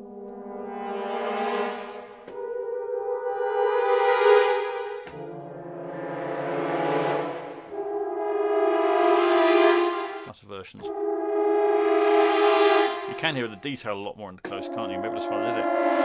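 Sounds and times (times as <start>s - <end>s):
french horns playing cluster chords: 0.0s - 13.6s, 14.5s - 16.0s.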